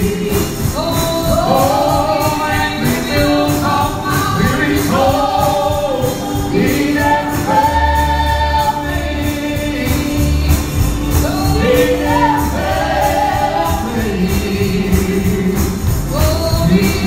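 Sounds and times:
bass line: 0.0s - 17.0s
gospel singing in harmony: 0.0s - 17.0s
light high percussion: 0.0s - 17.0s.

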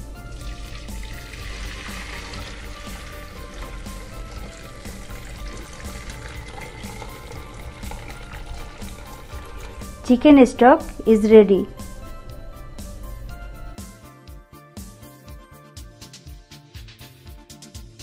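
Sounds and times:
background music: 0.0s - 18.0s
liquid pouring through strainer: 0.1s - 10.0s.

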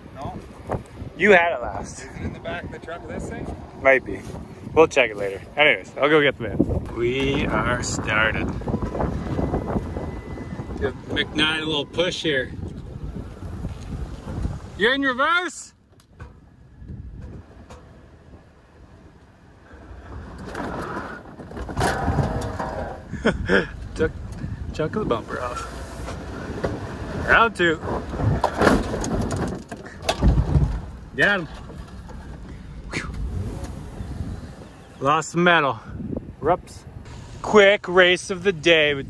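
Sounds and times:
engines straining: 0.6s - 15.2s, 16.0s - 39.0s
minivan rolling over dirt track: 17.2s - 24.2s, 24.8s - 35.6s
wheels spinning on dirt: 19.7s - 23.2s.

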